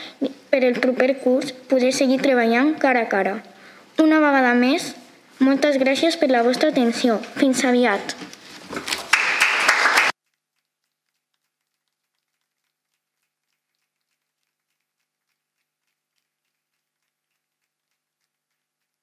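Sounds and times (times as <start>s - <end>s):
small group applauding: 8.8s - 10.2s.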